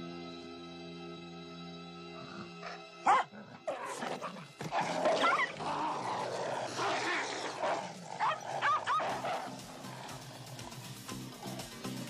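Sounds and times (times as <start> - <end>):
animals snarling and growling: 2.1 - 12.0.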